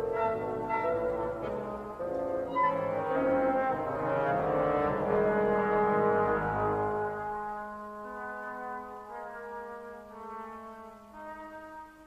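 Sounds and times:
orchestral music with loud brass chords: 0.0 - 12.0.

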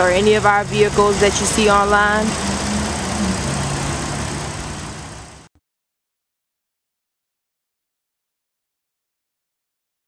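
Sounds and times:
car engine idling: 0.0 - 5.5.

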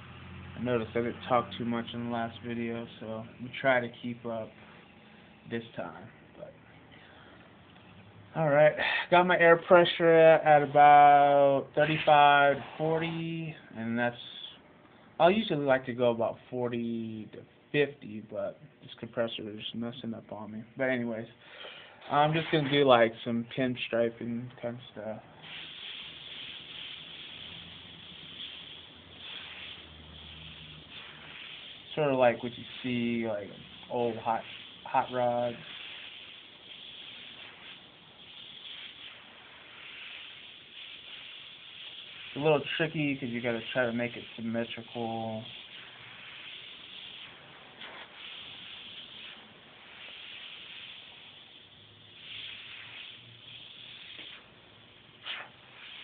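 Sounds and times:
airbrush hissing: 8.8 - 13.4, 21.5 - 24.0, 24.7 - 56.0.

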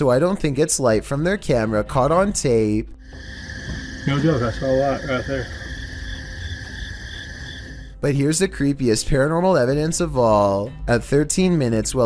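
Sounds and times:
insects trilling: 3.0 - 8.0
low rumble: 3.0 - 8.0
high pulsing chirp: 3.2 - 7.9.

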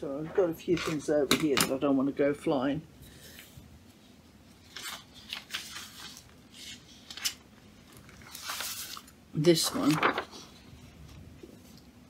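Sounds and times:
paper sheets rustling: 4.5 - 11.8.

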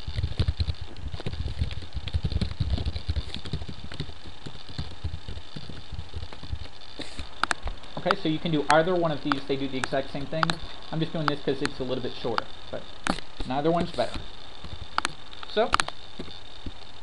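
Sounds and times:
keyboard typing: 0.0 - 16.8.

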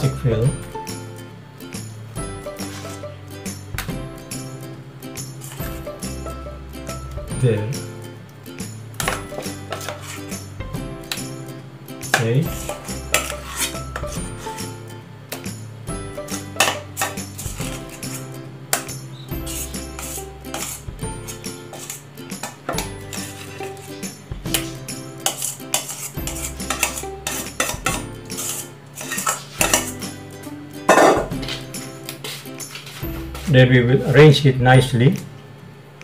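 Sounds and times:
background music with held chords: 0.0 - 36.0
metal spoon clinking: 12.1 - 14.2, 16.6 - 23.9, 24.5 - 30.1.

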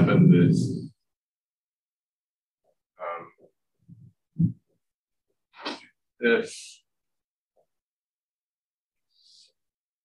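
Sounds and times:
man's low vocal burst: 0.0 - 0.9.

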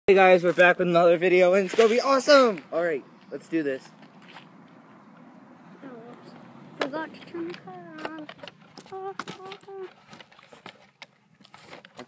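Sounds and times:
high-pitched voice: 5.8 - 10.0.

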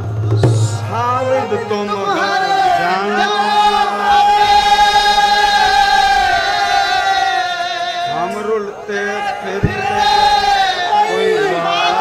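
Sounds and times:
men singing together: 0.6 - 12.0.

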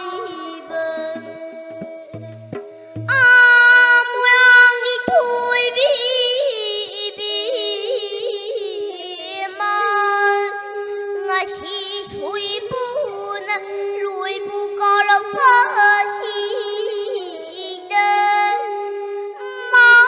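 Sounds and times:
girl singing with vibrato: 0.0 - 2.1, 3.1 - 20.0.

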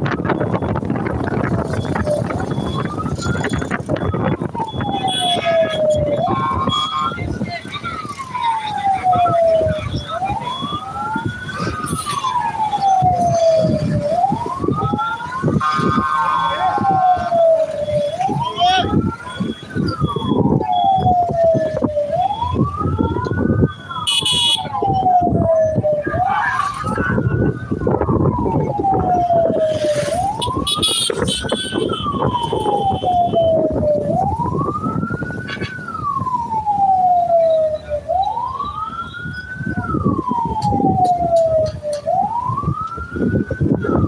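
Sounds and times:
moving vehicle road noise: 0.0 - 44.0
siren wailing: 0.0 - 44.0.

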